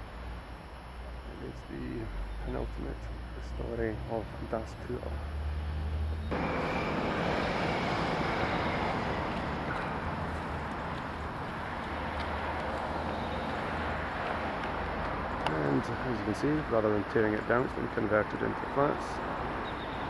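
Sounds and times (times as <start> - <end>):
outdoor rushing noise: 0.0 - 20.0.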